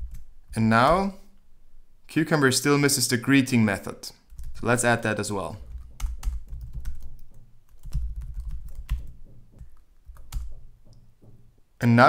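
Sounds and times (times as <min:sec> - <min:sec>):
computer keyboard typing: 0:00.0 - 0:00.3, 0:04.3 - 0:04.8, 0:05.6 - 0:11.0.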